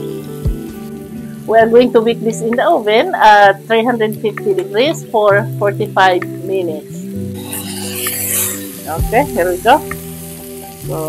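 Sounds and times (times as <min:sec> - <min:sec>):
background music with held notes: 0:00.0 - 0:11.0
pork sizzling in a skillet: 0:00.0 - 0:11.0.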